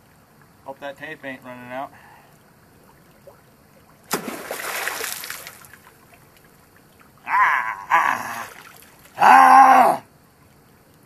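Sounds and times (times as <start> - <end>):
faint stream running: 0.0 - 11.0
spear splashing into water: 4.0 - 6.2, 8.3 - 9.2.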